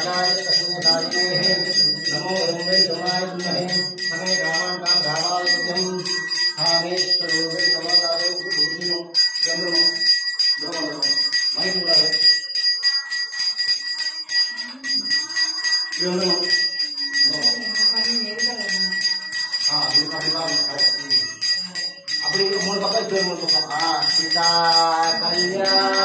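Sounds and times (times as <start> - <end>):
people's voices: 0.0 - 26.0
small brass bell ringing: 0.0 - 26.0.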